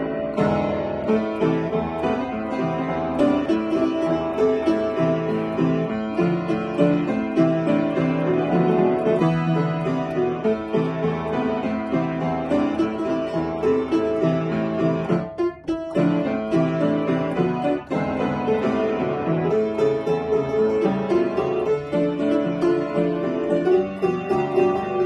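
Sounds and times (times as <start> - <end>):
solo upright piano piece: 0.0 - 25.0.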